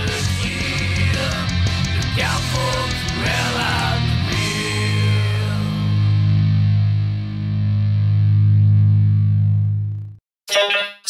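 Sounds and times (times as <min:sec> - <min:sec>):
distorted electric guitar chord: 0:00.0 - 0:10.2
person speaking: 0:10.5 - 0:11.0.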